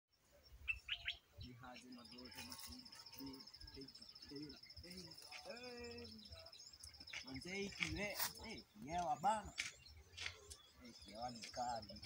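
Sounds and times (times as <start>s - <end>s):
bird chirps: 0.2s - 12.0s.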